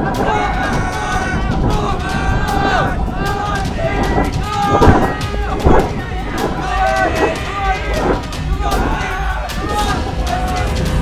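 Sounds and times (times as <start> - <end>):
low rumble: 0.0 - 11.0
people shouting and crying out: 0.0 - 11.0.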